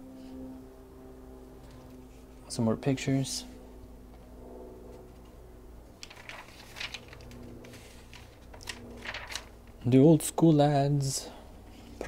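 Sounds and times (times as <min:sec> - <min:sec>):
faint low hum: 0:00.0 - 0:12.0
magazine pages rustling: 0:06.0 - 0:10.0.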